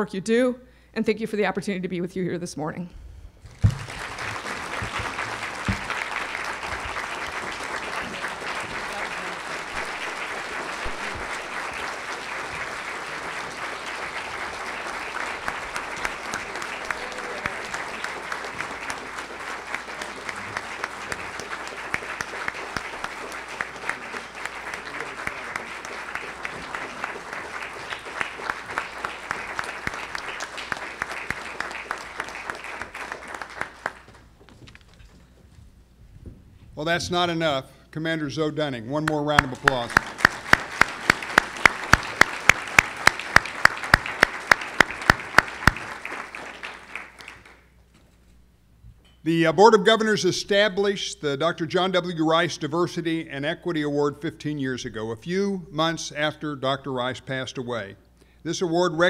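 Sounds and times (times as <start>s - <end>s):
audience applause: 3.5s - 34.8s, 39.3s - 47.7s.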